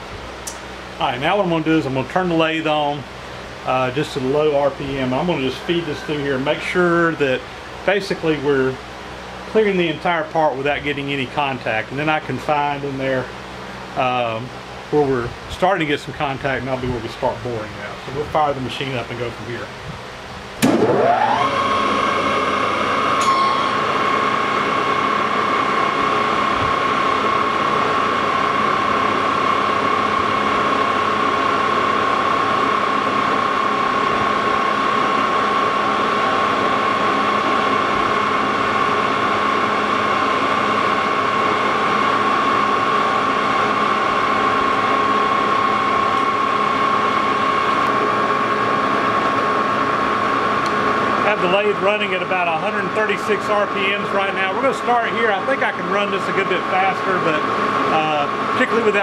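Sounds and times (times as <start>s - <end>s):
lathe gear whine: 0.0s - 59.0s.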